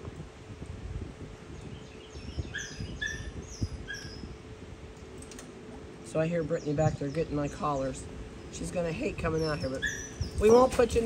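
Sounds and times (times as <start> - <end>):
steady low hum: 0.0 - 11.0
small animals chirping: 9.3 - 10.6.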